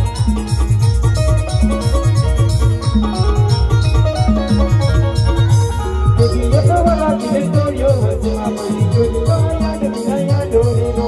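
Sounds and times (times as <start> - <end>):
electronic keyboard melody: 0.0 - 11.0
fast steady drum beat: 0.0 - 11.0.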